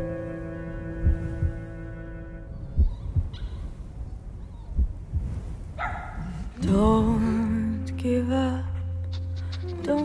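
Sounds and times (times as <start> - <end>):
dull low thumps: 0.0 - 5.8, 6.4 - 7.7.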